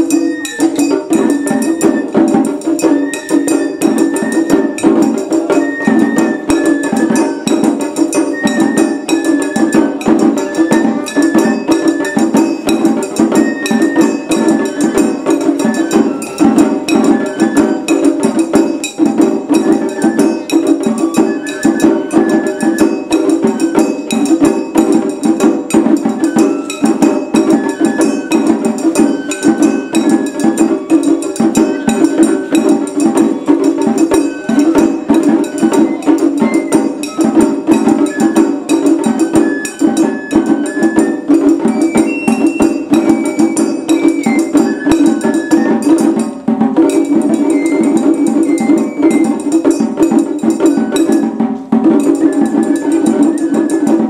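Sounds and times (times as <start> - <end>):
bamboo flute melody: 0.0 - 54.0
large drum: 0.0 - 54.0
rapid small drum strokes: 0.0 - 54.0.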